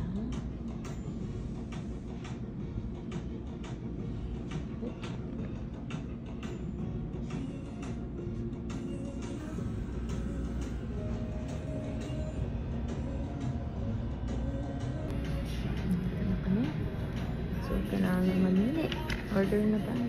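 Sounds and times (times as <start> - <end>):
music playing: 0.0 - 20.0
steady low rumble: 0.0 - 20.0.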